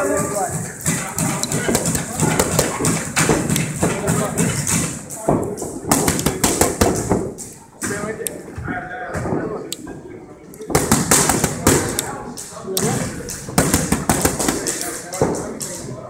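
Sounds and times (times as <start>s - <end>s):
boxing gloves hitting mitts: 0.0s - 7.4s, 12.8s - 15.6s.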